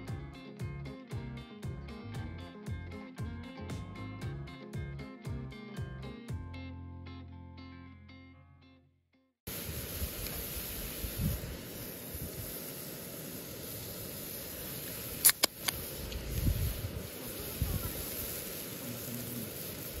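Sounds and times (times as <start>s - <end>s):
guitar music: 0.0s - 9.0s
outdoor background noise: 9.5s - 20.0s
can pull tab cracking open: 15.2s - 16.2s.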